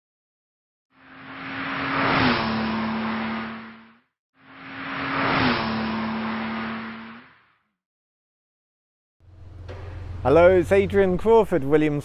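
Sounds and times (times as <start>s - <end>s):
car driving past: 1.0s - 7.6s, 9.2s - 11.2s.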